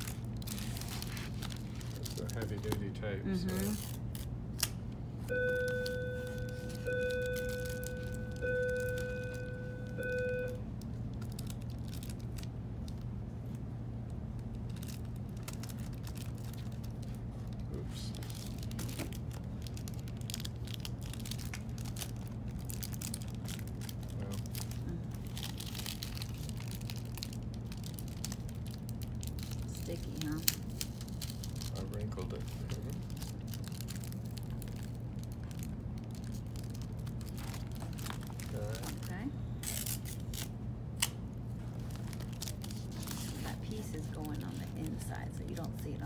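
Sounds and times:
tape being handled: 0.0 - 2.9, 3.5 - 4.9, 5.5 - 13.6, 14.3 - 45.6
plastic cover crinkling: 0.0 - 4.7, 5.8 - 9.4, 10.8 - 13.6, 14.3 - 45.8
low hum: 2.9 - 46.0.

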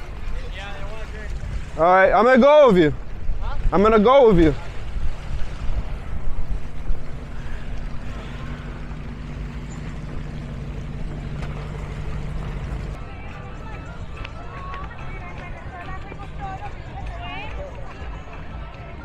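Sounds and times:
water noise: 0.0 - 19.0
wind: 0.0 - 19.0
low engine hum: 4.5 - 16.9
faint crowd voices: 12.4 - 19.0.

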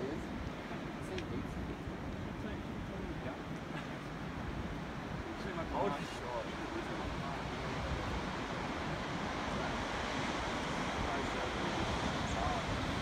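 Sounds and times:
wind rumbling on microphone: 0.0 - 13.0
ocean surf breaking: 3.7 - 13.0.

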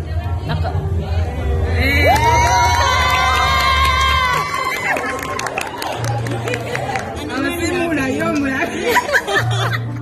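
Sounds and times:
high-pitched whooping scream: 2.0 - 6.0.

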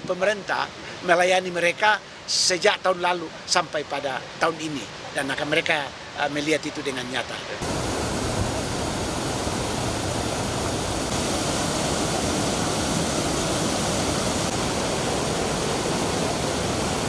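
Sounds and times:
river rushing over rocks: 0.1 - 17.0.

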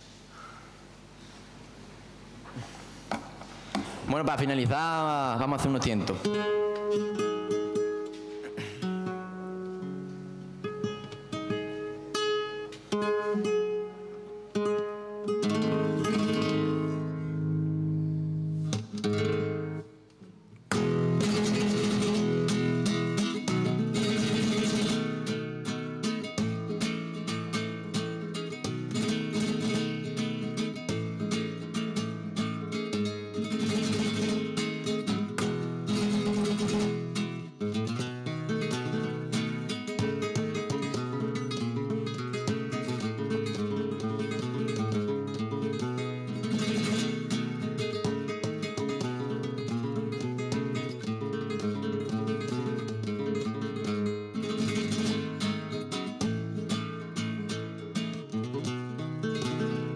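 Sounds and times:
solo flamenco guitar: 5.4 - 59.9.

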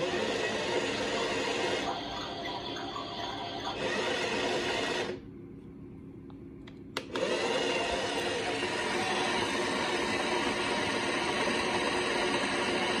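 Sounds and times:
toy washing machine running: 0.0 - 5.2, 7.0 - 13.0.

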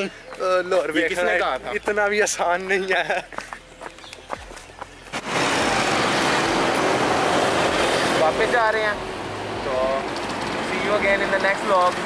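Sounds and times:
road noise: 0.0 - 12.0
motorcycle engine: 5.1 - 12.0.

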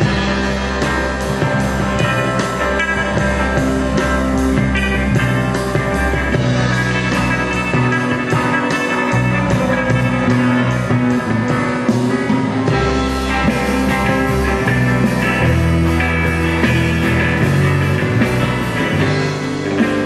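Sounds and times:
rock band playing live: 0.0 - 20.0.

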